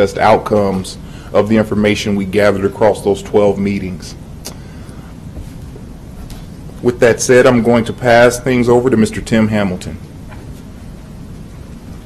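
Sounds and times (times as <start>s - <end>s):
low room and microphone rumble: 0.0s - 12.0s.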